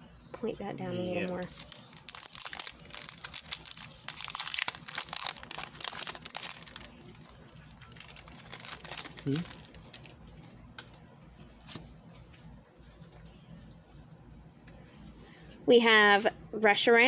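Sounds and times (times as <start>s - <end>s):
foil wrapper crinkling: 1.2s - 11.8s.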